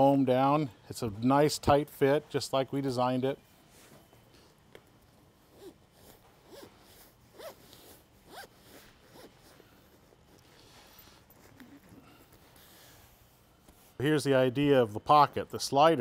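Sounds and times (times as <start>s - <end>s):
zipper zipping: 5.5s - 10.1s, 11.3s - 12.0s.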